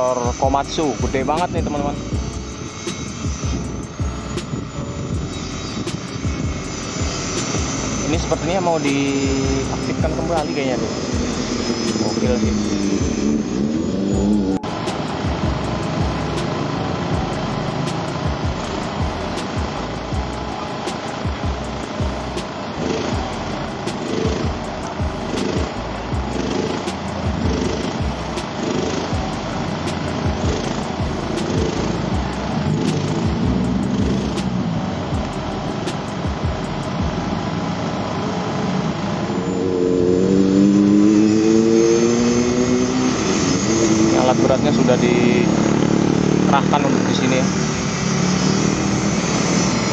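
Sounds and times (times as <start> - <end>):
excavator diesel engine under load: 0.0 - 49.9.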